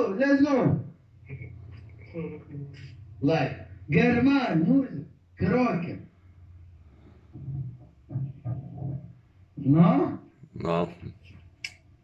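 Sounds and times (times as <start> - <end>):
man making low vocal sounds: 10.4 - 11.3.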